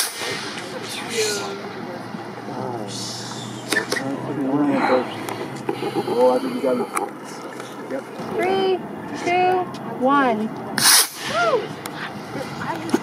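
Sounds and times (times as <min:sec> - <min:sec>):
people talking: 0:00.0 - 0:10.5, 0:12.3 - 0:13.0.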